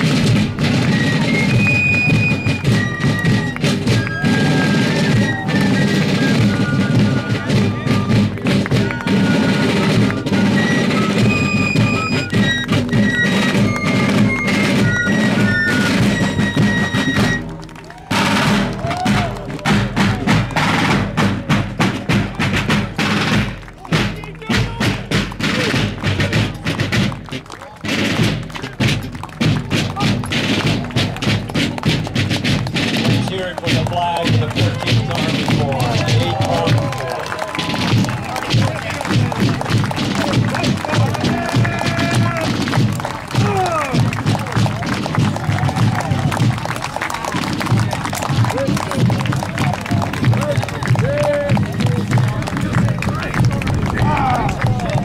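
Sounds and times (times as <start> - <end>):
snare drum beats and rolls: 0.0 - 55.0
voices: 0.0 - 55.0
shrill fife melody: 0.5 - 18.5.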